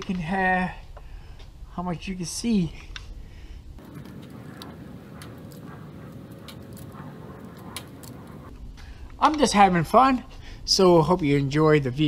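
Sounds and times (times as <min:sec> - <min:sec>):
faint steady hum: 0:03.2 - 0:09.2.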